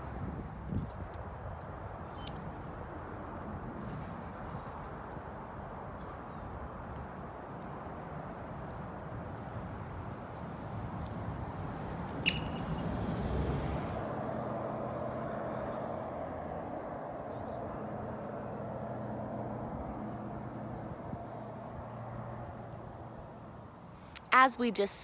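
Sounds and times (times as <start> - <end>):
marmot high chirp: 12.2 - 12.7.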